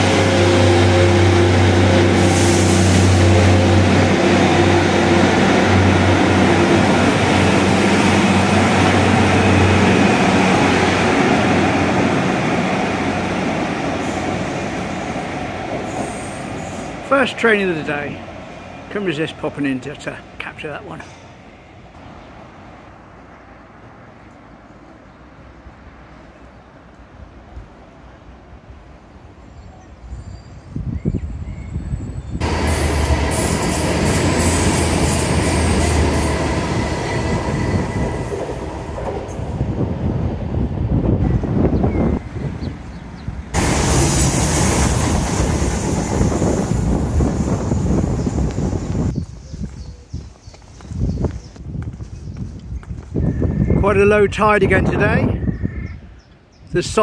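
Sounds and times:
quiet street ambience: 0.0s - 46.2s, 46.9s - 54.3s
diesel train passing: 0.0s - 50.0s.

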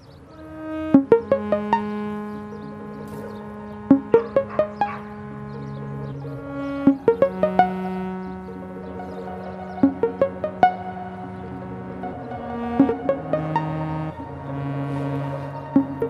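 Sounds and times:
held low synth note: 0.3s - 16.0s
short plucked synth notes: 0.3s - 16.0s.

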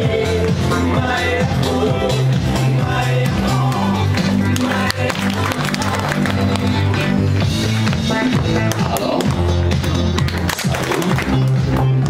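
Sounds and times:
upbeat music with bass line: 0.0s - 12.0s
children clapping along: 4.4s - 6.8s, 10.2s - 11.8s.

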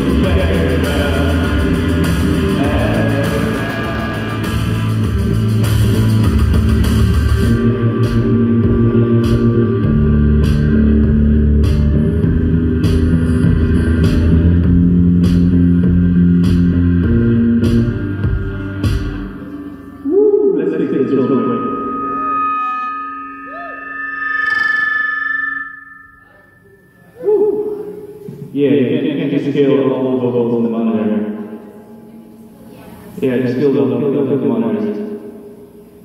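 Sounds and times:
electronic rock music: 0.0s - 27.0s
gliding synth tones: 19.3s - 28.3s.

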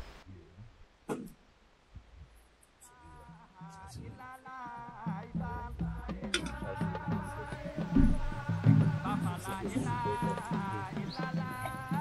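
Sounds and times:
high wavering sung chant: 2.8s - 12.0s.

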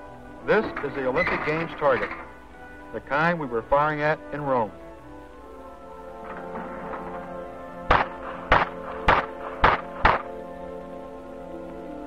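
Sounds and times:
orchestral background music: 0.0s - 12.0s
pistol shots: 7.9s - 10.3s.

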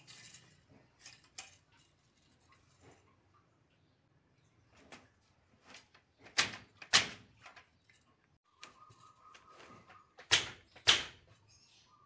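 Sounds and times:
wooden loom beater clacks: 9.8s - 11.3s.

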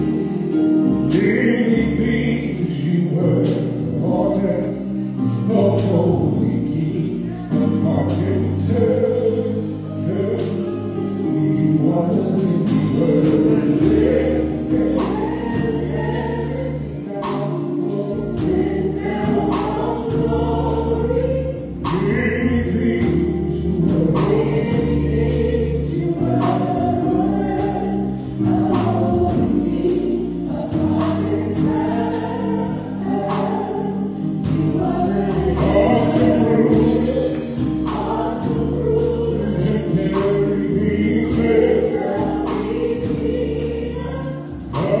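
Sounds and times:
sustained bass notes: 0.0s - 45.0s
man singing: 0.8s - 20.6s, 21.6s - 27.2s, 33.1s - 42.7s
steady drum beat: 10.4s - 45.0s.

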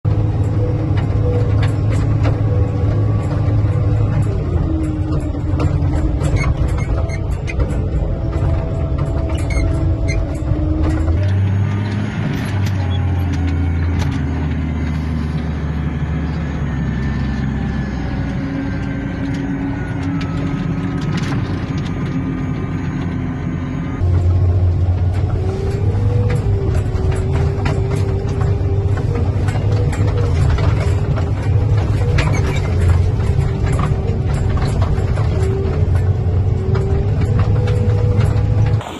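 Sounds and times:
snowplow engine running: 0.0s - 38.9s
plow blade pushing snow: 0.1s - 38.9s.

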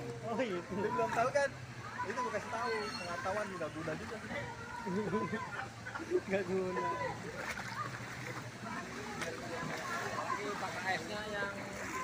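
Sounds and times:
faint voices: 0.0s - 12.0s
footsteps splashing through water: 5.6s - 12.0s.

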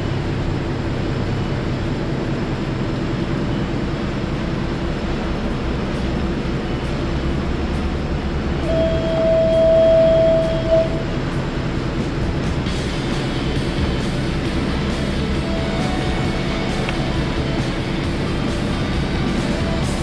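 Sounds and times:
low rumble: 0.0s - 20.0s
held whistle-like tone: 8.7s - 11.2s.

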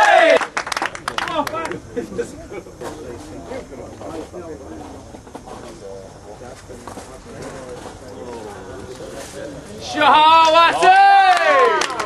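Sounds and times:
faint scattered claps: 0.0s - 1.8s, 10.3s - 12.0s
distant indistinct voices talking: 1.2s - 10.8s.

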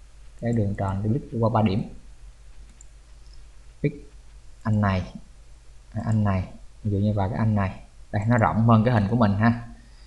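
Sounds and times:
low background hum: 0.0s - 10.0s
computer mouse clicks: 2.5s - 4.8s.

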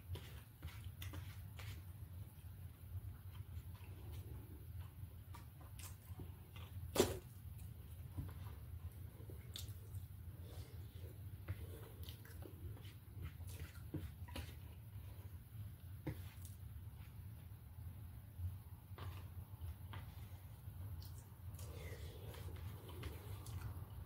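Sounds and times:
faint chewing: 0.0s - 17.3s, 18.9s - 24.0s.

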